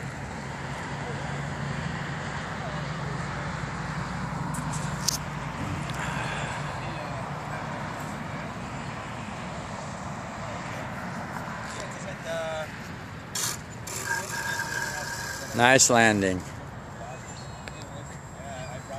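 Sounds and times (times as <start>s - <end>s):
road traffic noise: 0.0s - 18.9s.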